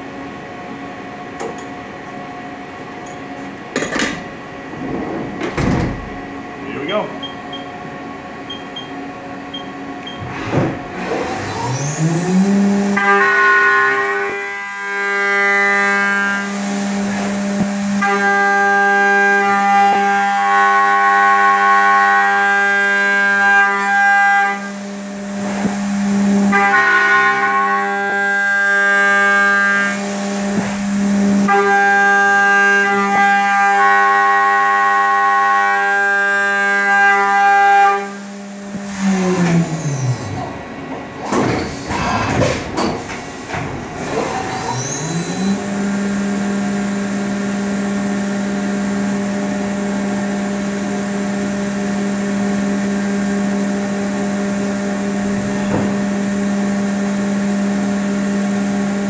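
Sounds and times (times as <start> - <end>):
mill spindle humming: 6.0 - 13.1.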